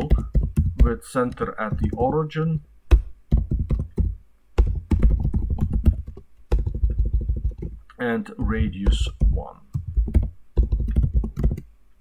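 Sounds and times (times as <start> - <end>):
computer keyboard typing: 0.0 - 2.2, 3.3 - 7.8, 8.4 - 11.7.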